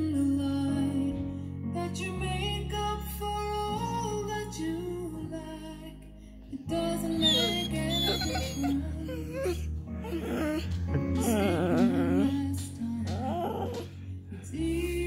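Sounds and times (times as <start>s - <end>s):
slow gentle background music: 0.0s - 15.0s.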